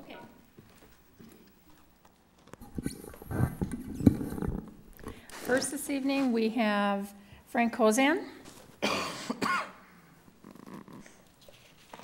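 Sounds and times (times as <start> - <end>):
microphone handling rustling: 2.6 - 5.6.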